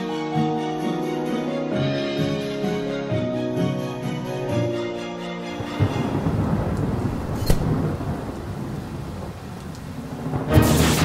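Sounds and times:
steady rain: 5.4s - 11.0s
low rumble of thunder: 5.6s - 11.0s.

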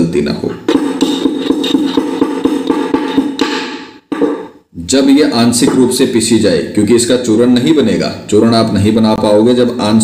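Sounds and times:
metal pestle pounding in metal mortar: 0.6s - 4.6s.

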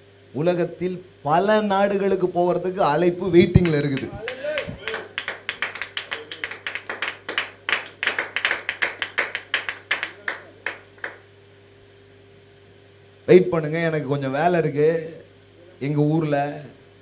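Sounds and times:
faint steady hum: 0.0s - 17.0s
people clapping: 3.3s - 11.3s.

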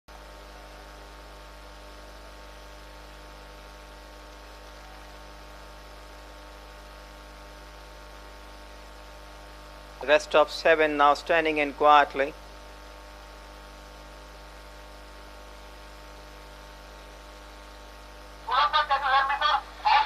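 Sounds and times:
electrical mains hum: 0.1s - 20.0s.

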